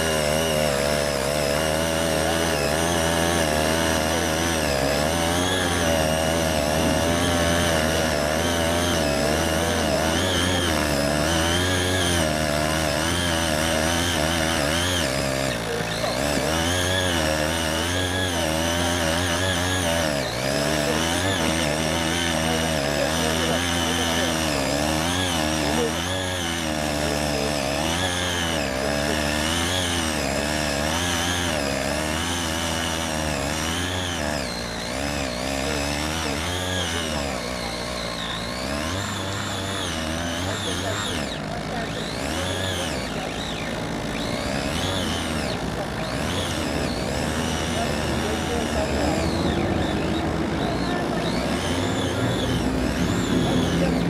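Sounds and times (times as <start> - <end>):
tiller engine running under load: 0.0 - 54.0
tines churning frozen soil: 0.0 - 54.0.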